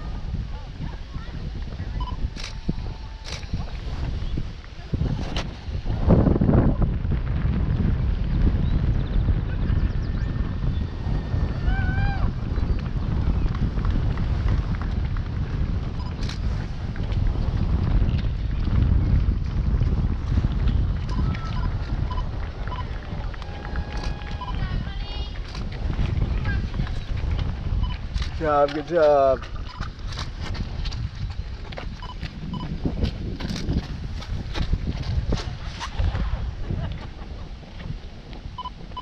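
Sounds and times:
steady low rumble: 0:00.0 - 0:39.0
wind buffeting microphone: 0:00.0 - 0:39.0
running footsteps on wet asphalt: 0:10.8 - 0:39.0.

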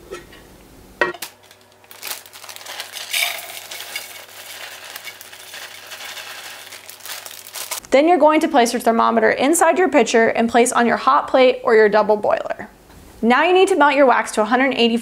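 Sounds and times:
plastic bag rustling: 0:01.2 - 0:07.9
wax flakes pouring into pitcher: 0:01.4 - 0:07.9.

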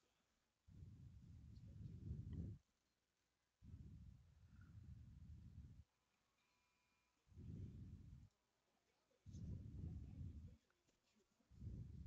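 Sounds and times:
low muffled rumble: 0:00.8 - 0:02.6, 0:07.4 - 0:08.3, 0:09.3 - 0:10.6, 0:11.6 - 0:12.0.

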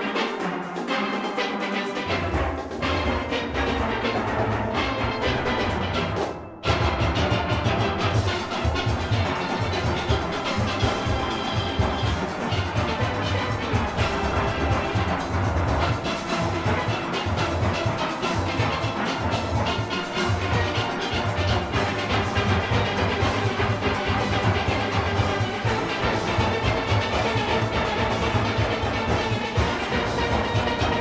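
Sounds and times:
congas: 0:00.0 - 0:31.0
steelpans playing melody: 0:00.0 - 0:31.0
drum kit beat: 0:01.9 - 0:31.0.

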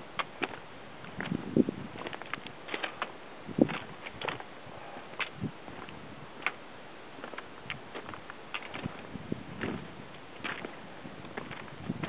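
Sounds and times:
boots crunching on loose rock: 0:00.2 - 0:04.5, 0:07.2 - 0:12.0.

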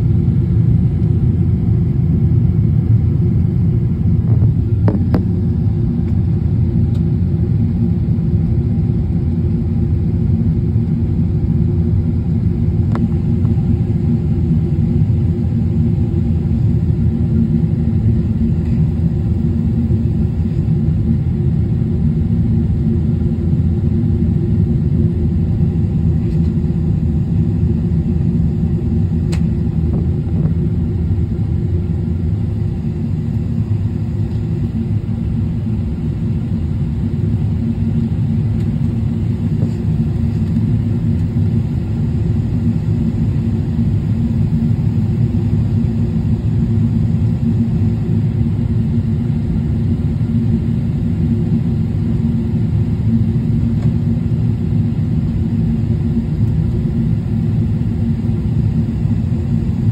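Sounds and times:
airliner cabin rumble: 0:00.0 - 0:59.9.

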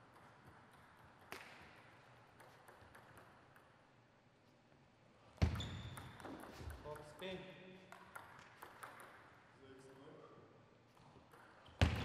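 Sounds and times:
table tennis ball ticking: 0:02.4 - 0:03.8, 0:07.9 - 0:09.3.

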